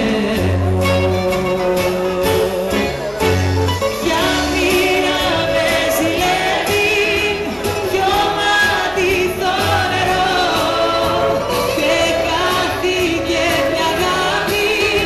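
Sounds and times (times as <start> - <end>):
bass line: 0.0 - 15.0
person singing: 0.0 - 15.0
plucked strings: 0.0 - 15.0.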